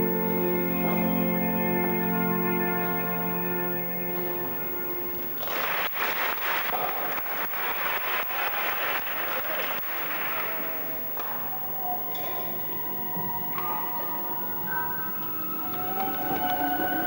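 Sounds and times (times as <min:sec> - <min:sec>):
music: 0:00.0 - 0:05.6, 0:10.7 - 0:17.0
audience clapping: 0:05.2 - 0:12.8.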